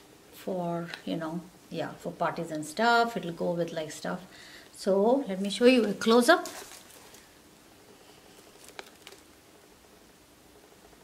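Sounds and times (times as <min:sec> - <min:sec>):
bag rustling: 0:05.8 - 0:07.4.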